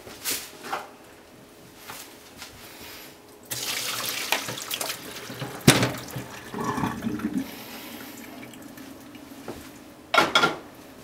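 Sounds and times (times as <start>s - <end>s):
water and chicken splashing into colander: 3.5s - 9.4s
water draining: 3.5s - 9.6s.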